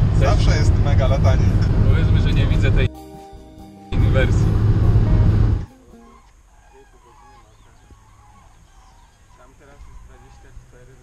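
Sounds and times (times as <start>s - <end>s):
road noise inside moving car: 0.0s - 2.9s, 4.0s - 5.7s
flock of birds calling: 5.5s - 11.0s.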